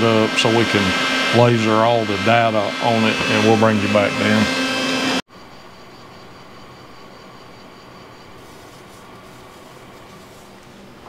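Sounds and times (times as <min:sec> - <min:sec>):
laser marking machine humming: 0:00.0 - 0:05.2, 0:08.0 - 0:11.0
faint high whine: 0:00.0 - 0:11.0.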